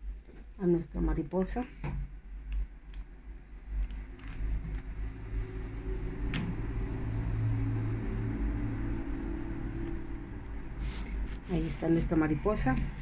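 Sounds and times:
low engine hum: 4.0s - 10.8s.

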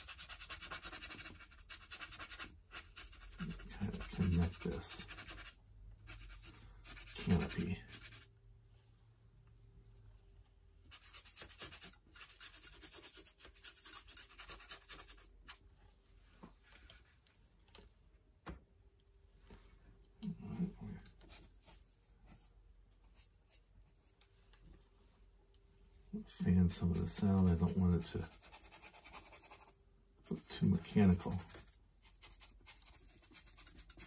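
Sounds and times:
paintbrush scrubbing on canvas: 0.0s - 8.3s, 10.9s - 15.6s.

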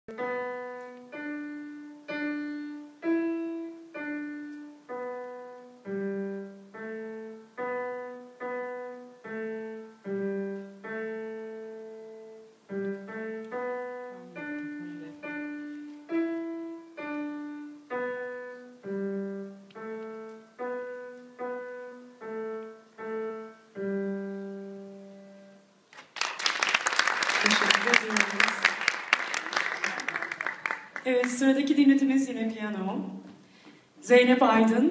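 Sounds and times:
slow piano piece: 0.1s - 31.1s.

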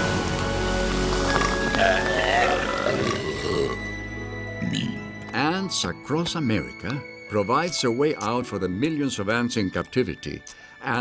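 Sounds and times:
soda fizzing and gushing: 0.0s - 3.8s
background music: 0.0s - 11.0s.

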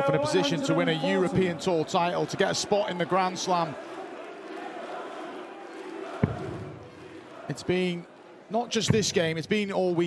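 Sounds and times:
arena crowd voices: 0.0s - 10.0s.

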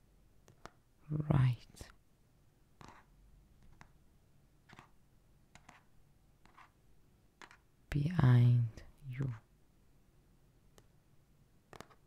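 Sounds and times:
woman whispering: 1.0s - 2.0s, 7.9s - 9.5s.

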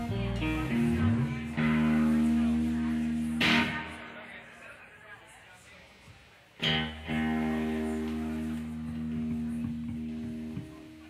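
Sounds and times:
electric guitar notes and chord: 0.0s - 4.3s, 6.6s - 11.0s
sharp hit on guitar strings: 3.4s - 4.1s.

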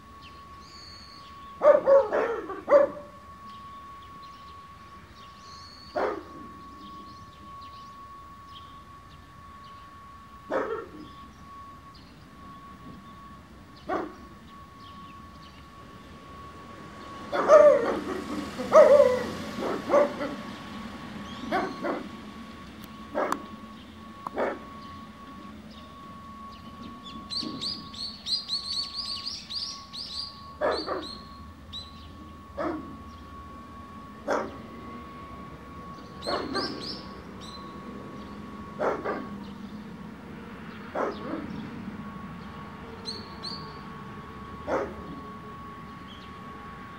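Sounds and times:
dogs barking: 1.6s - 3.1s, 5.9s - 6.4s, 10.5s - 11.1s, 13.9s - 14.3s, 17.3s - 20.5s, 21.4s - 22.2s, 23.1s - 23.5s, 24.3s - 24.7s, 30.6s - 31.2s, 32.6s - 33.0s, 34.2s - 34.7s, 36.2s - 37.0s, 38.8s - 39.5s, 40.9s - 41.7s, 44.6s - 45.1s.

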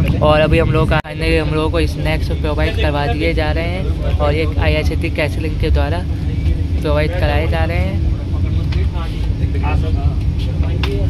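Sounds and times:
faint constant hum: 0.0s - 11.0s
passenger voices: 0.0s - 11.0s
train running low rumble: 0.0s - 11.0s.

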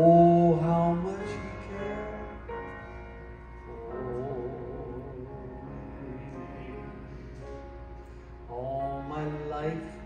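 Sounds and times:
gospel instrumental accompaniment: 0.0s - 10.0s
sustained melody line: 0.0s - 10.0s.

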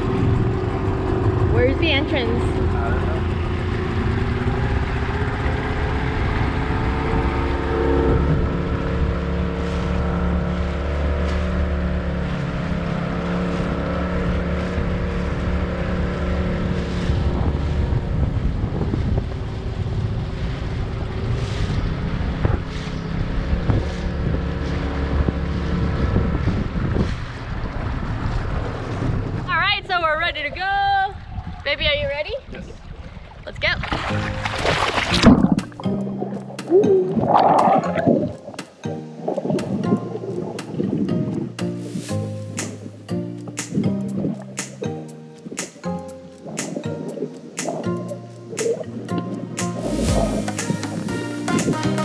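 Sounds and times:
wind on microphone: 0.0s - 38.6s, 39.2s - 44.8s, 45.4s - 52.0s
outboard motor running: 0.0s - 52.0s
water rushing along hull: 0.0s - 52.0s.

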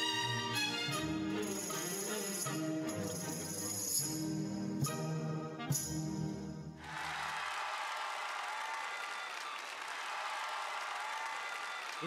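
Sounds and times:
orchestral ballet music: 0.0s - 6.6s
audience applause: 6.8s - 12.0s.

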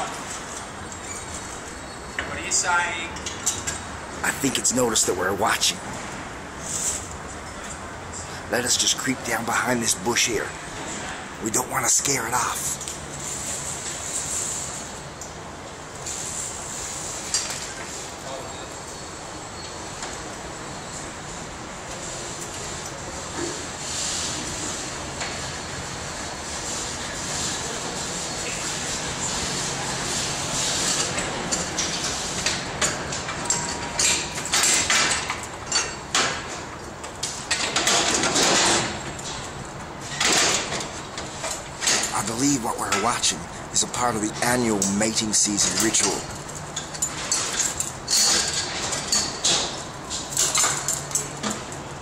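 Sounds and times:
rumbling and hissing background noise: 0.0s - 52.0s.

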